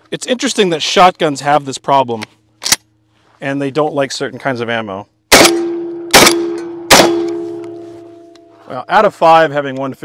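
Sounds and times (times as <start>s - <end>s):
shotgun shots: 5.3s - 7.7s
metallic ringing: 5.6s - 8.7s.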